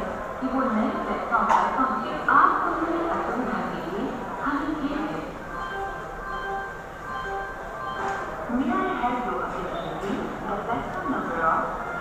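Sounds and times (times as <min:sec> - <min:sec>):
electronic announcement chime: 0:05.4 - 0:10.0.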